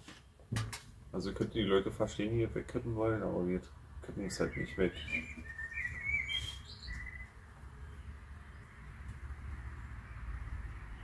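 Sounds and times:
small bird chirping: 4.4 - 8.7.

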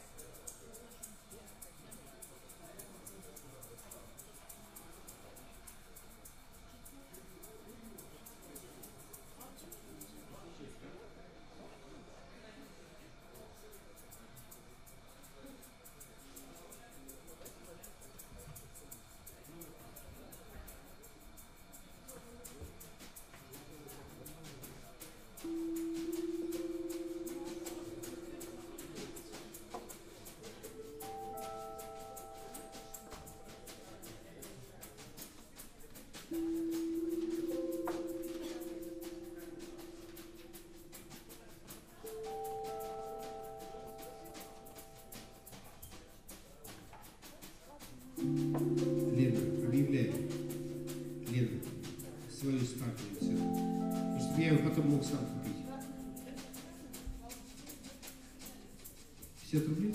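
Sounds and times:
audience chatter: 0.0 - 59.9
sustained electric keyboard note: 25.5 - 34.2, 48.2 - 58.5.

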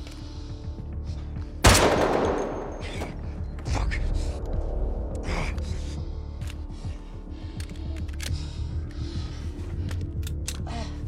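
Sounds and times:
low pulsing film score: 0.0 - 11.0
loud gunshot: 1.6 - 2.8.

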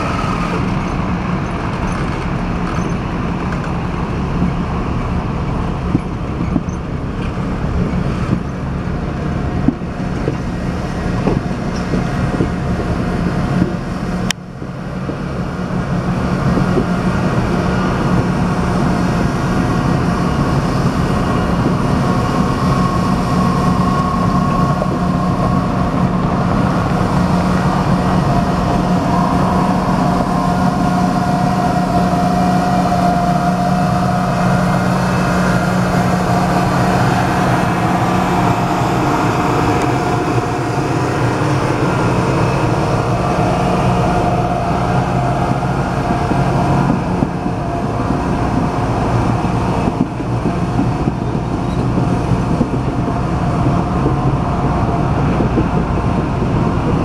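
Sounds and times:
train wheels rumbling over track: 0.0 - 57.0.

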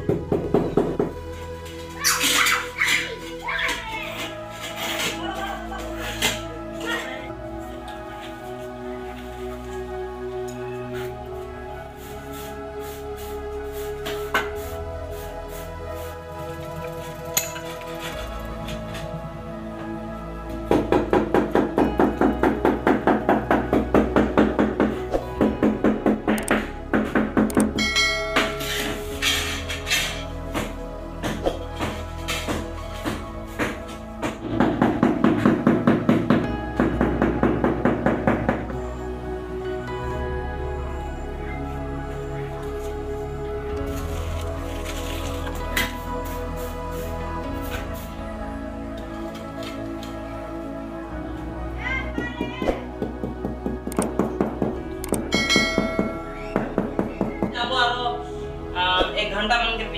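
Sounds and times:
background music with quick beat: 0.0 - 38.9, 51.9 - 59.9
bell chime: 27.8 - 29.0, 55.3 - 56.7.

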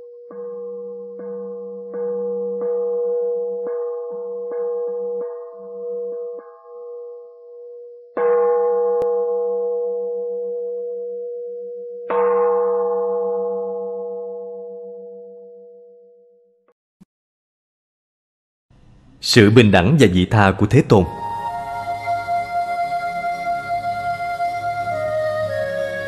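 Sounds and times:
singing bowl struck and ringing: 0.0 - 16.4.

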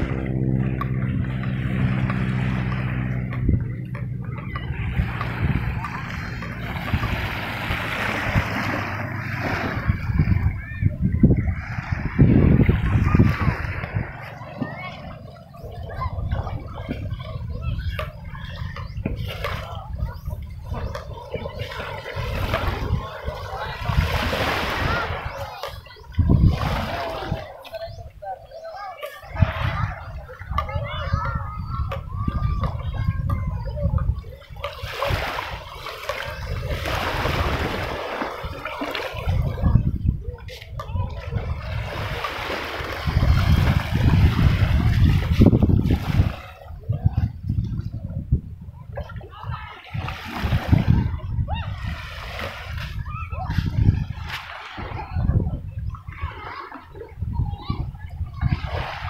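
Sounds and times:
people talking: 0.0 - 59.0
wind rumbling on microphone: 0.0 - 59.0
small waves washing onto sand: 4.7 - 18.6, 19.2 - 31.0, 34.2 - 47.9, 49.0 - 59.0.

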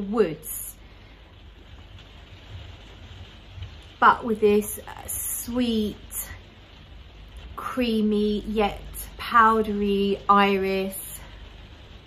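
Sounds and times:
light rain on a roof: 0.0 - 12.0
low rumble: 0.0 - 12.0.

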